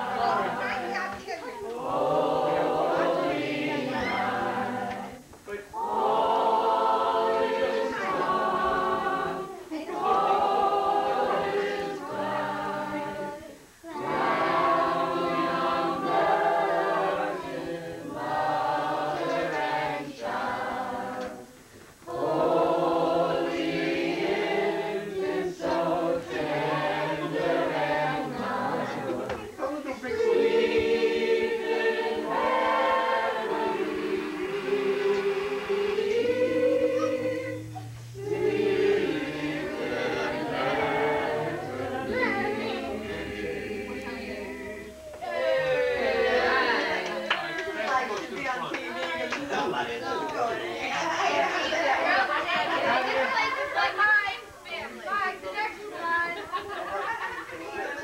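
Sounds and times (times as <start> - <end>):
group singing unaccompanied: 0.0 - 58.0.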